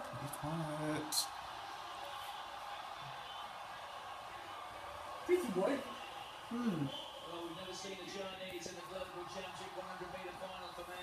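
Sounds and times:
stadium crowd murmur on television: 0.0s - 11.0s.

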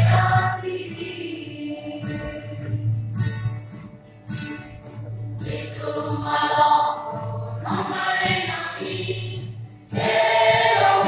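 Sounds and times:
choir singing: 0.0s - 2.9s, 5.4s - 11.0s
acoustic guitar strumming: 0.0s - 11.0s.

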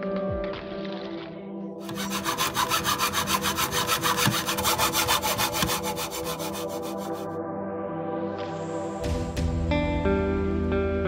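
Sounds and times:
hand saw cutting wood: 1.8s - 7.3s.

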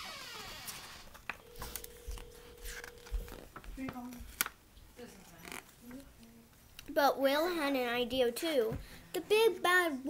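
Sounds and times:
book pages tapping and rustling: 1.2s - 4.6s
faint steady tone: 1.3s - 3.4s.

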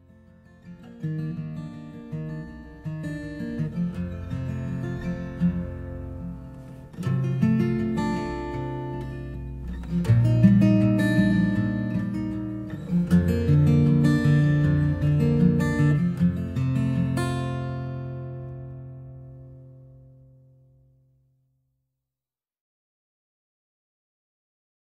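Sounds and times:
acoustic guitar strumming: 0.0s - 21.2s.

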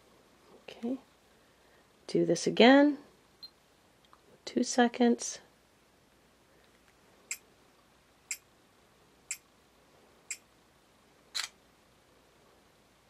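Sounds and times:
camera shutter release: 11.3s - 11.6s.

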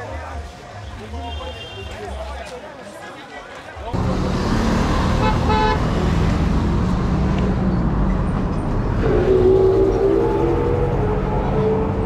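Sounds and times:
road traffic: 3.7s - 12.0s.

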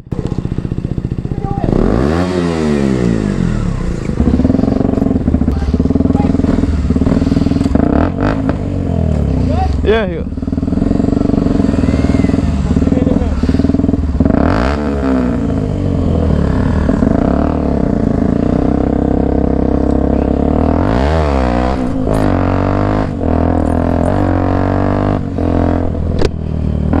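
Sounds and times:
motorcycle engine revving: 0.0s - 27.0s.

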